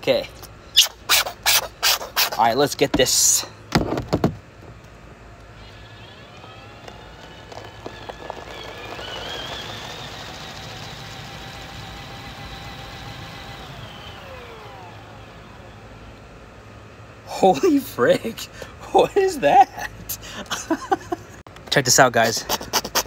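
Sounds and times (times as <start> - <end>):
power drill motor whine: 5.4 - 16.3.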